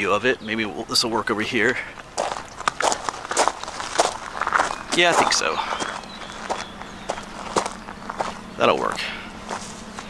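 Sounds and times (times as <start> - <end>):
footsteps crunching on gravel: 1.6 - 10.0.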